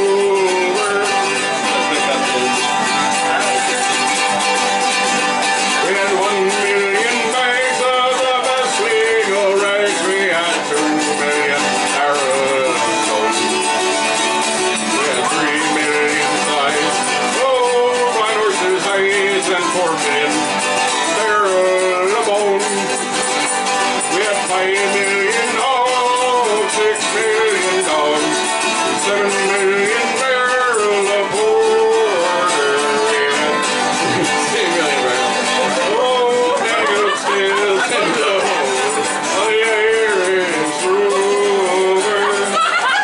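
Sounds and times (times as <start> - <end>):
bouzouki strumming: 0.0 - 43.0
man singing into a microphone: 0.0 - 43.0.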